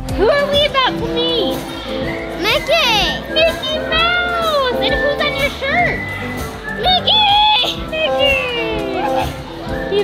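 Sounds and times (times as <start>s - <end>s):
background music: 0.0s - 10.0s
children calling and exclaiming: 0.0s - 10.0s.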